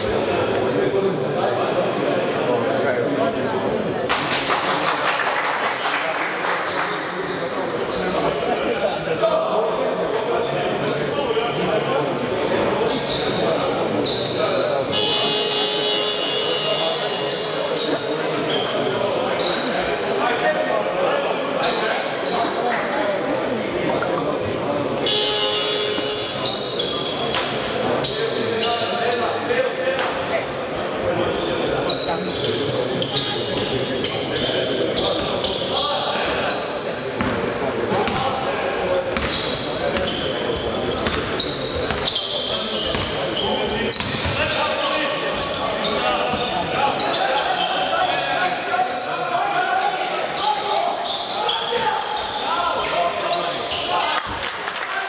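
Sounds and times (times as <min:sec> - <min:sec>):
sneaker squeaks: 0:06.6 - 0:08.3, 0:09.9 - 0:11.5, 0:12.7 - 0:20.2, 0:21.6 - 0:29.5, 0:31.3 - 0:54.2.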